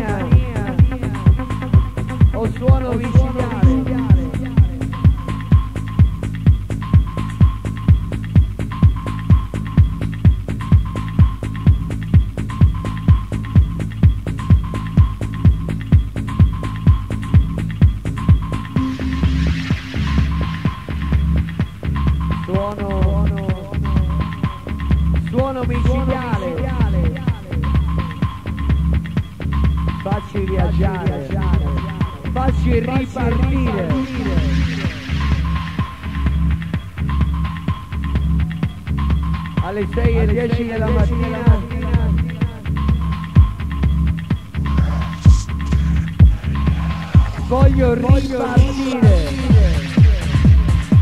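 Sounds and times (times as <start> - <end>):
deep kick drum: 0.0 - 19.0, 41.0 - 51.0
bass drone: 0.0 - 51.0
electronic dance music: 0.0 - 51.0
held high tone: 3.0 - 5.8, 18.8 - 21.3.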